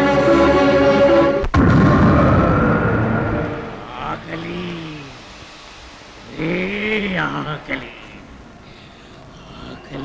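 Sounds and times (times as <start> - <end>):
heavy rumble: 1.4 - 8.6
voice crying out: 3.8 - 5.2.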